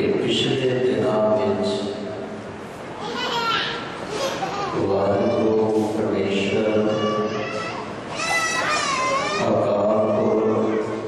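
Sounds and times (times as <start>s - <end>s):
man chanting a prayer: 4.8s - 7.5s, 9.4s - 11.0s.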